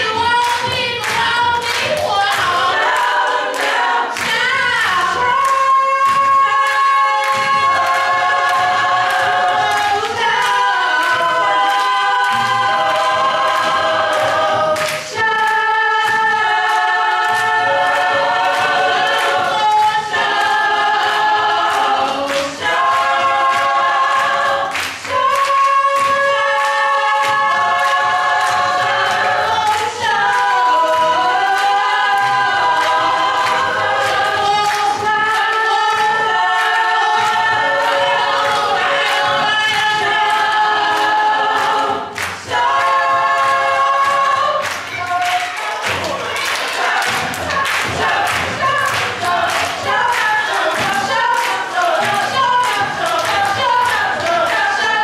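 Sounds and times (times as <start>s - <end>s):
gospel choir singing in harmony: 0.0s - 55.0s.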